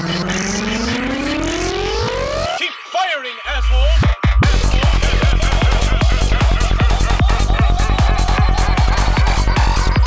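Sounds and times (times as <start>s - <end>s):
rising synth tone: 0.0s - 2.6s
dark psytrance beat: 0.0s - 10.0s.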